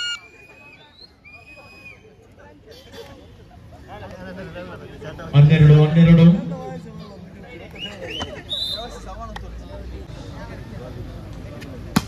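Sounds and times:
low crowd noise: 0.0 - 12.0.

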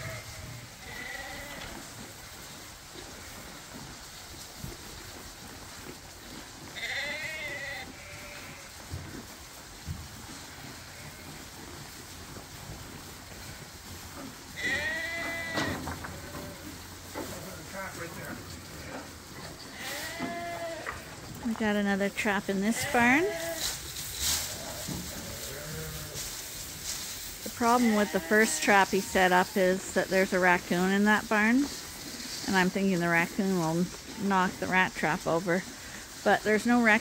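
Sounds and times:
sheep bleating: 0.0 - 1.8, 6.8 - 8.7, 14.6 - 16.6, 19.7 - 21.1, 22.5 - 23.7, 27.7 - 29.6.

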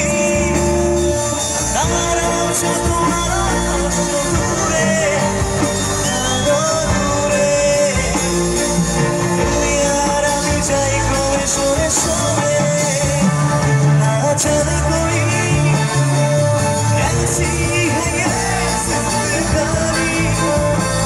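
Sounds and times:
drums: 0.0 - 21.0
electric guitar: 0.0 - 21.0
keyboard: 0.0 - 21.0
man singing into microphone: 0.0 - 21.0.

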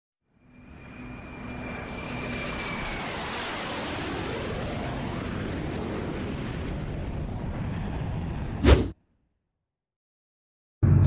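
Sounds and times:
airplane engine rushing: 0.4 - 9.0.

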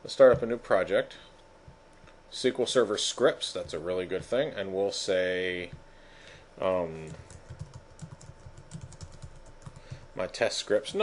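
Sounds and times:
computer keyboard typing: 7.0 - 10.0.

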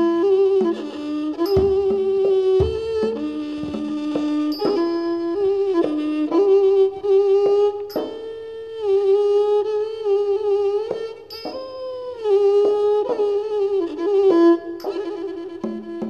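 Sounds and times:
bowed fiddle slow melody: 0.0 - 16.0.

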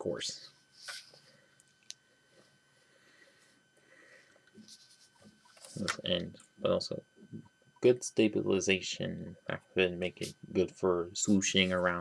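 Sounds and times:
faint steady high tone: 0.0 - 12.0.

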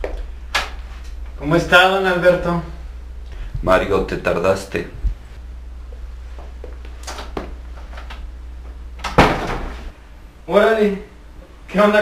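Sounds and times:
steady low hum: 0.0 - 12.0
door shutting thud: 9.0 - 9.9.

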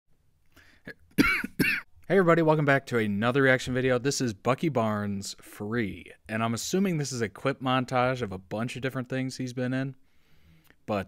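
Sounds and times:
man coughing: 0.9 - 1.9.

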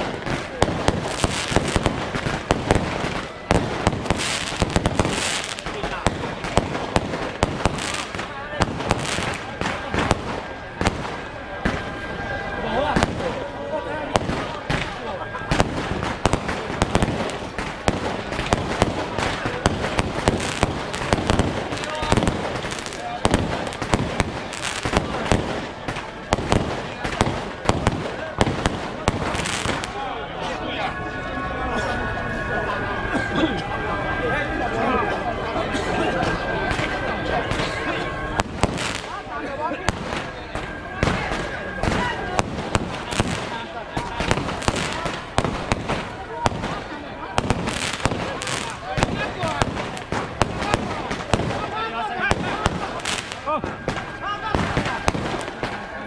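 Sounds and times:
firecrackers cracking and popping: 0.0 - 12.0, 12.9 - 30.1, 36.3 - 56.0.

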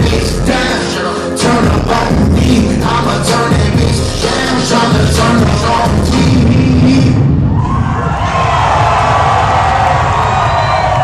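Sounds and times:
hip-hop beat over loudspeakers: 0.0 - 7.4
crowd cheering: 7.3 - 11.0.

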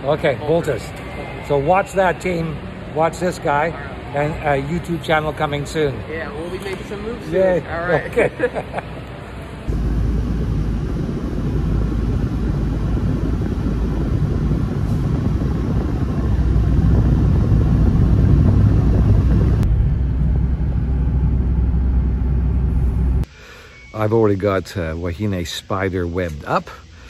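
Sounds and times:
car cabin road and engine rumble: 3.5 - 23.3.

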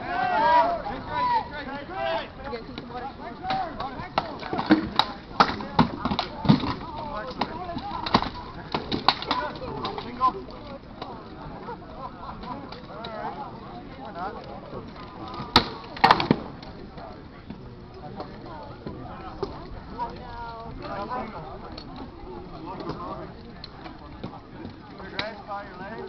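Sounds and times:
people shouting: 0.0 - 2.4.

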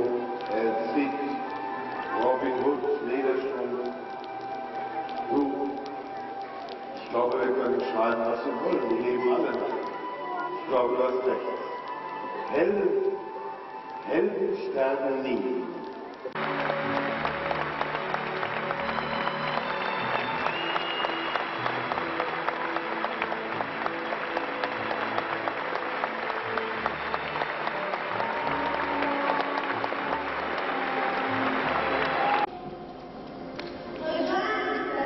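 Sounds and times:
audience applauding: 16.3 - 32.5.

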